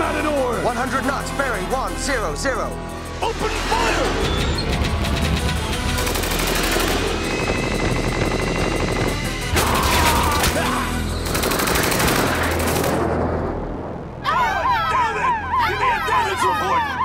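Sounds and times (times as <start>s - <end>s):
action music: 0.0s - 17.0s
machine-gun fire: 5.9s - 10.5s, 11.2s - 13.4s.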